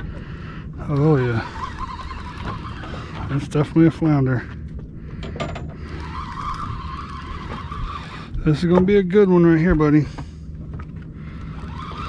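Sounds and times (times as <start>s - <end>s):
low steady rumble: 0.0s - 12.0s
fishing reel whirring: 0.8s - 3.8s, 5.6s - 8.6s, 11.2s - 12.0s.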